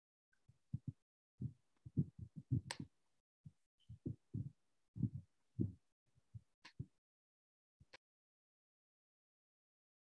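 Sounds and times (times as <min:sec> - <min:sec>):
low muffled thumps: 0:00.7 - 0:02.9, 0:04.0 - 0:05.8.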